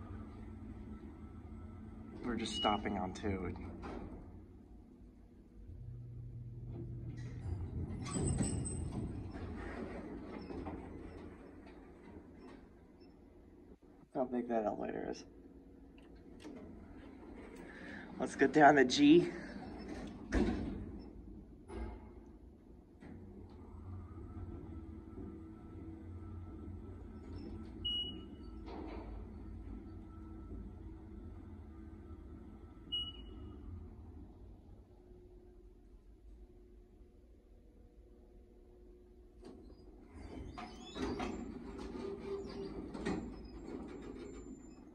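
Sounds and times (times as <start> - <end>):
elevator car stopping: 0.0 - 4.5, 5.5 - 13.5, 16.2 - 22.2, 23.0 - 36.0, 39.3 - 44.9
elevator doors sliding open: 0.0 - 4.6, 5.7 - 13.4, 16.1 - 35.0, 39.4 - 44.9.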